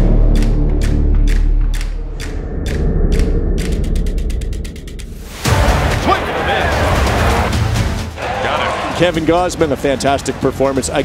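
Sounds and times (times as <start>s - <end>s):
mechanical clock ticking: 0.0s - 5.2s
low music drone: 0.0s - 8.2s.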